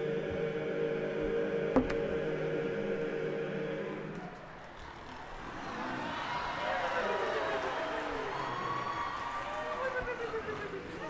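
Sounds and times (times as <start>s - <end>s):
men's a cappella chorus: 0.0s - 4.5s
audience noise: 3.8s - 11.0s.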